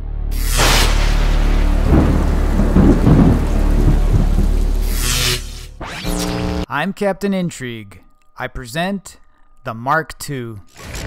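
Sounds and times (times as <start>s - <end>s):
deep steady drone: 0.0s - 6.7s
rushing hiss of heavy rain: 0.5s - 5.7s
crackling thunder rumbles: 0.6s - 5.6s.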